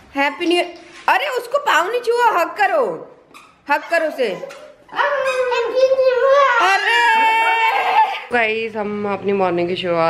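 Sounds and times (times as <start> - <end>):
toddler whining and crying: 4.9 - 8.3.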